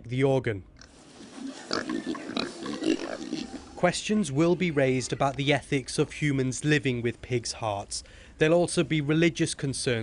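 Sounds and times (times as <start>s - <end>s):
pigs grunting: 0.8s - 3.9s.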